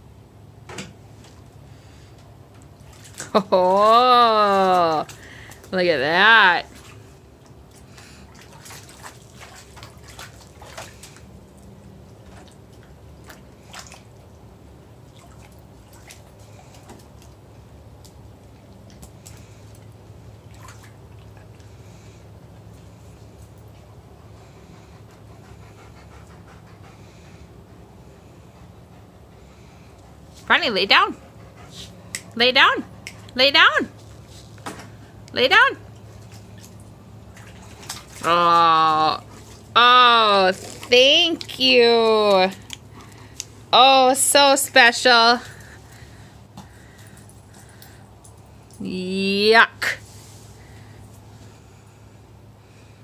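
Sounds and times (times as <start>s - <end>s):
low outdoor rumble: 0.0s - 53.0s
dog splashing in plastic pool: 0.9s - 23.7s, 35.8s - 48.7s
dog panting: 23.8s - 33.4s.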